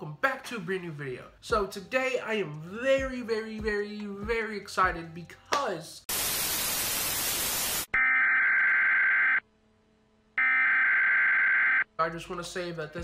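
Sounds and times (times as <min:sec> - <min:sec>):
television static hiss: 0:06.1 - 0:07.9
long electronic beeps: 0:08.0 - 0:09.4, 0:10.4 - 0:11.8.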